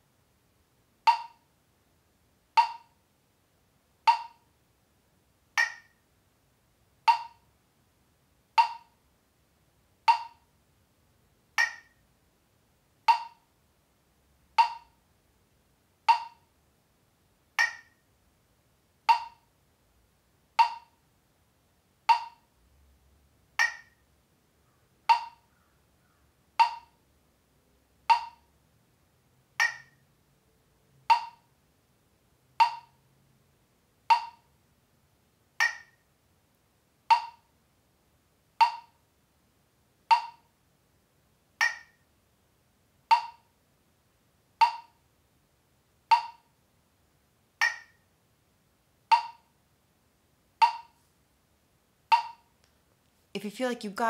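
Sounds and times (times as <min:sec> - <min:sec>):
metronome clicking: 0:01.1 - 0:01.4, 0:02.6 - 0:03.0, 0:04.1 - 0:04.5, 0:05.6 - 0:06.0, 0:07.1 - 0:07.5, 0:08.6 - 0:09.0, 0:10.1 - 0:10.5, 0:11.6 - 0:12.0, 0:13.1 - 0:13.5, 0:14.6 - 0:15.0, 0:16.1 - 0:16.5, 0:17.6 - 0:18.0, 0:19.1 - 0:19.5, 0:20.6 - 0:21.0, 0:22.1 - 0:22.5, 0:23.6 - 0:24.0, 0:25.1 - 0:25.6, 0:26.6 - 0:27.0, 0:28.1 - 0:28.5, 0:29.6 - 0:30.0, 0:31.1 - 0:31.5, 0:32.6 - 0:33.0, 0:34.1 - 0:34.5, 0:35.6 - 0:36.0, 0:37.1 - 0:37.5, 0:38.6 - 0:39.0, 0:40.1 - 0:40.5, 0:41.6 - 0:42.0, 0:43.1 - 0:43.5, 0:44.6 - 0:45.0, 0:46.1 - 0:46.5, 0:47.6 - 0:48.0, 0:49.1 - 0:49.5, 0:50.6 - 0:51.0, 0:52.1 - 0:52.5.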